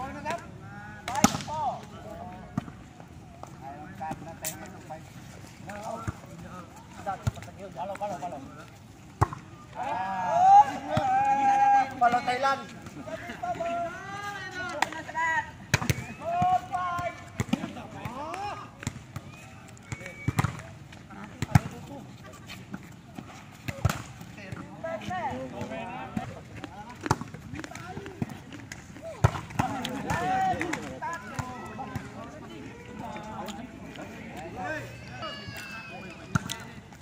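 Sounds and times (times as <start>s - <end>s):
players calling and shouting: 0.0s - 37.0s
volleyball slaps: 1.0s - 1.6s, 9.2s - 9.5s, 19.9s - 20.7s, 23.6s - 24.6s, 27.0s - 32.1s, 36.3s - 36.7s.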